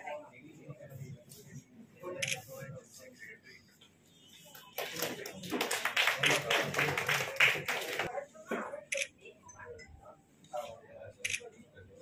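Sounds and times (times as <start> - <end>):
audience applause: 4.8 - 8.1.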